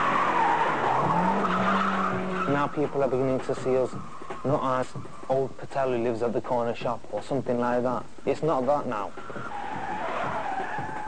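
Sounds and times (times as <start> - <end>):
car tyres squealing: 0.0 - 5.3, 9.0 - 11.0.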